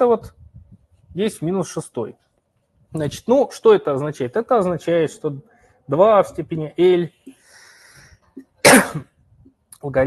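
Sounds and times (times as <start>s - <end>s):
person coughing: 8.6s - 9.2s.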